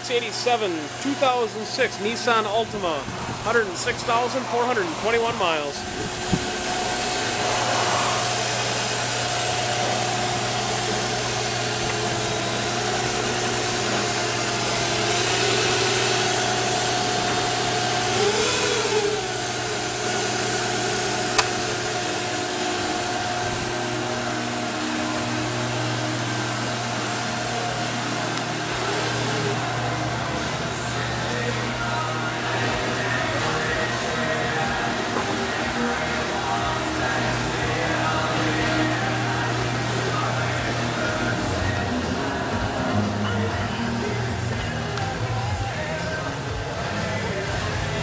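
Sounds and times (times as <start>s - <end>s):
car engine idling: 0.0s - 46.8s
sharp click: 21.4s - 21.7s.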